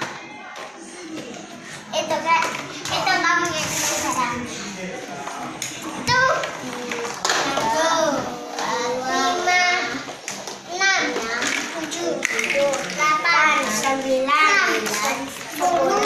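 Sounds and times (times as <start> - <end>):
children talking and calling out: 1.8 - 4.6, 5.8 - 16.0.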